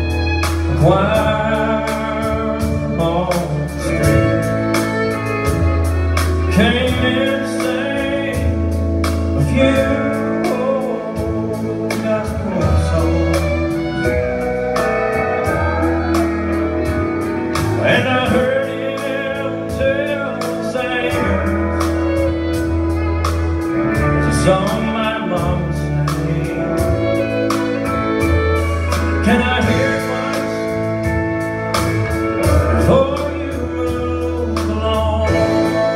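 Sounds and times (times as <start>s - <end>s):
live country band playing: 0.0s - 35.9s
person singing: 0.0s - 35.9s.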